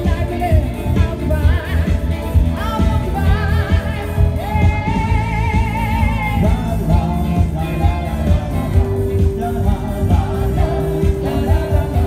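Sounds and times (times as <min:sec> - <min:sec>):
electric guitar: 0:00.0 - 0:12.0
heavy bass with steady beat: 0:00.0 - 0:12.0
keyboard: 0:00.0 - 0:12.0
singer holding long notes: 0:03.1 - 0:12.0.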